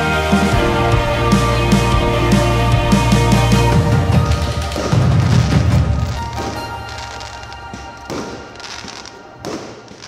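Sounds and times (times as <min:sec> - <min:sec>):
song playing: 0:00.0 - 0:10.0
firework crackling: 0:03.1 - 0:10.0
firework bangs: 0:03.8 - 0:10.0.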